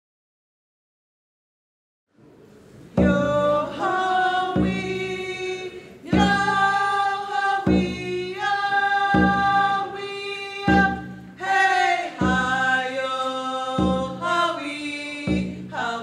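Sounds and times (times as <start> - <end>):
hand drum beat: 3.0 - 13.0, 13.8 - 14.5, 15.2 - 16.0
women singing together: 3.0 - 16.0.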